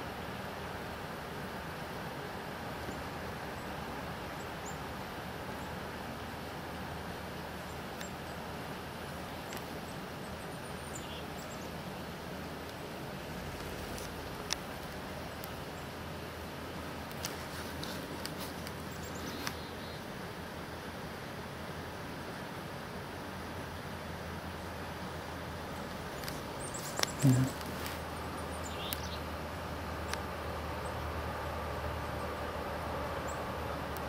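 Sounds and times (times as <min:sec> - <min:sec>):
outdoor background noise: 0:00.0 - 0:34.0
small birds chirping: 0:09.3 - 0:16.0, 0:17.1 - 0:20.1, 0:24.5 - 0:31.1.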